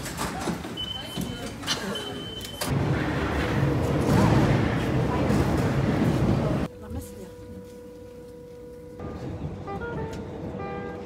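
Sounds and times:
high gate beeps: 0:00.8 - 0:02.7
train rumbling: 0:02.6 - 0:11.0.

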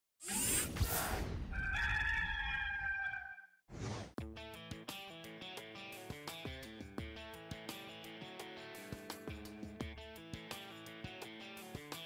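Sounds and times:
rooster crowing: 0:01.5 - 0:03.6.

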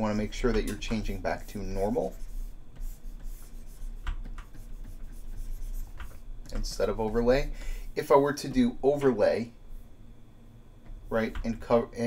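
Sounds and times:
steady low hum: 0:00.0 - 0:12.0
pen stylus scratching on tablet: 0:00.2 - 0:07.6.

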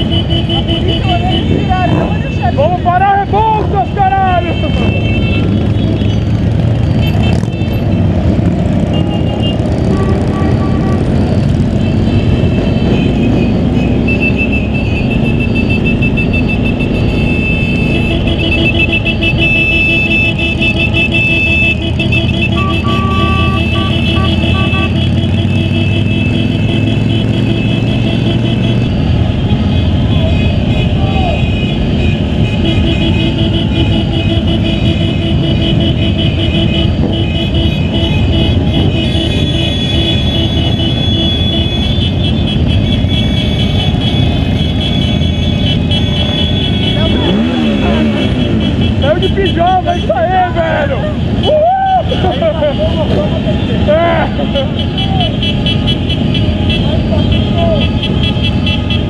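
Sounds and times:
other motorcycle engines: 0:00.0 - 0:59.0
motorcycle engine running: 0:04.4 - 0:50.0.

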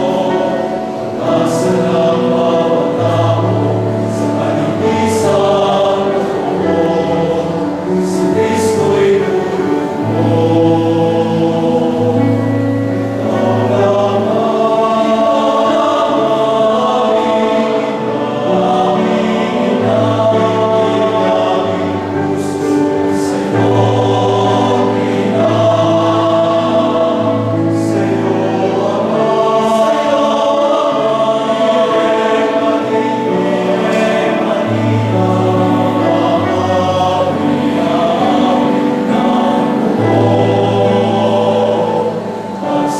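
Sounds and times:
male choir singing in harmony: 0:00.0 - 0:42.9.

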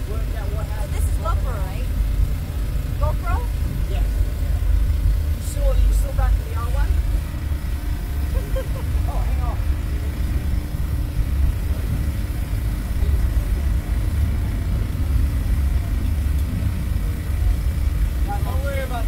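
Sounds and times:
faint steady hum: 0:00.0 - 0:19.0
low rumble: 0:00.0 - 0:19.0.

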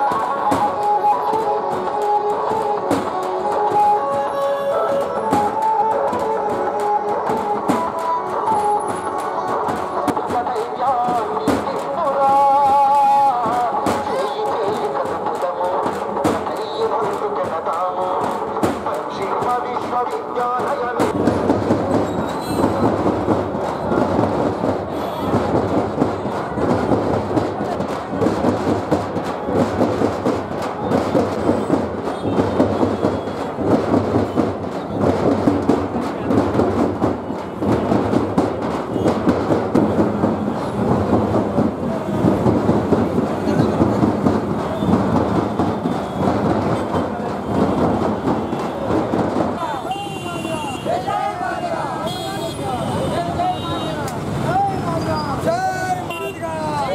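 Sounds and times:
frame drums beaten with sticks: 0:00.0 - 0:51.8
crowd voices: 0:00.0 - 0:56.9.

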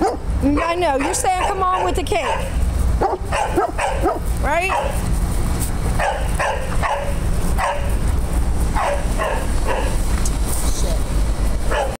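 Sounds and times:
dogs barking: 0:00.0 - 0:05.1, 0:05.9 - 0:10.1, 0:11.6 - 0:12.0
low microphone rumble: 0:00.0 - 0:11.9.

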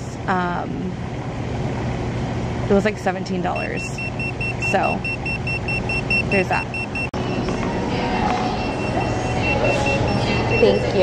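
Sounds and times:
low background hum: 0:00.0 - 0:11.0
rapid high electronic beeps: 0:03.6 - 0:07.5, 0:08.6 - 0:11.0.

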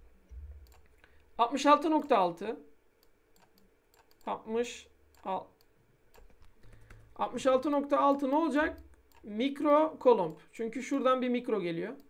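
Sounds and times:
computer input clicks and taps: 0:00.6 - 0:01.0, 0:02.0 - 0:02.2, 0:03.0 - 0:04.3, 0:05.1 - 0:09.3.

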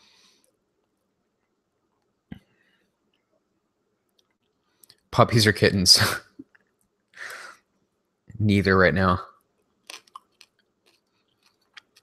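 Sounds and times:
chewing mouth clicks: 0:09.8 - 0:12.0.

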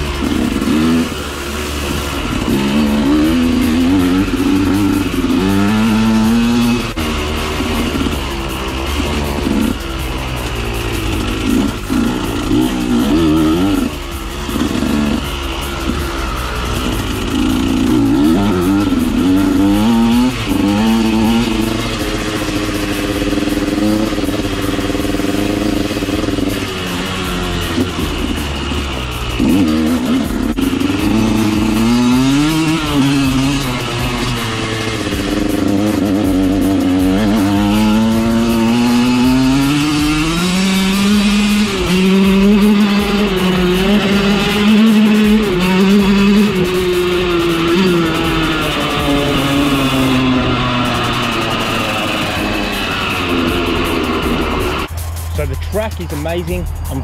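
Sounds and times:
two-stroke motorcycle engine revving: 0:00.0 - 0:57.0.

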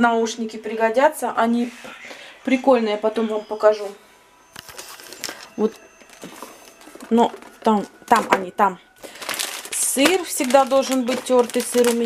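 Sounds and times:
plastic blister pack crackling: 0:04.6 - 0:12.0.

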